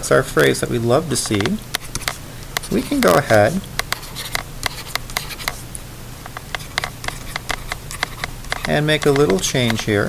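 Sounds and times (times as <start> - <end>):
low steady hum: 0.0 - 10.0
stylus tapping on tablet: 1.2 - 5.6, 6.2 - 9.9.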